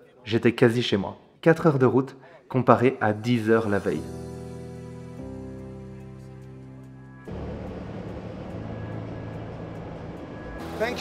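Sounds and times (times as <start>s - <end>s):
background music with sustained notes: 2.7s - 11.0s
lorry engine and road noise: 6.2s - 11.0s.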